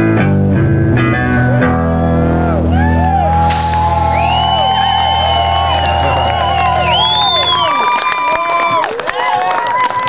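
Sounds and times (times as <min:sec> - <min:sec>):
rock band chord ringing: 0:01.6 - 0:08.0
crowd cheering and whistling: 0:02.1 - 0:10.0.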